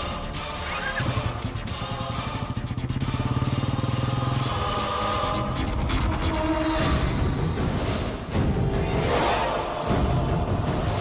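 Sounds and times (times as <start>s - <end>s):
motorcycle engine pulling away: 0.7s - 5.7s.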